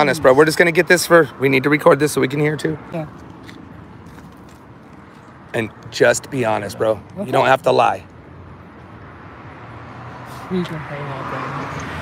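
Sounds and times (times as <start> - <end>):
street background noise: 0.0 - 12.0.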